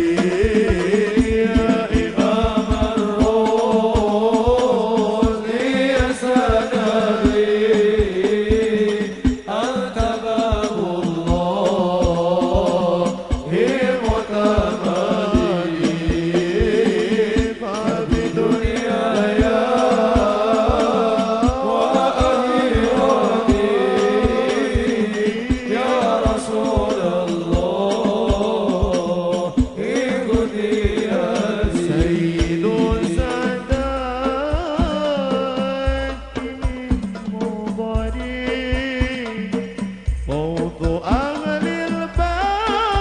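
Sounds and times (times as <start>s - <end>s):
frame drum beats: 0.0s - 43.0s
man singing devotional melody: 0.0s - 43.0s.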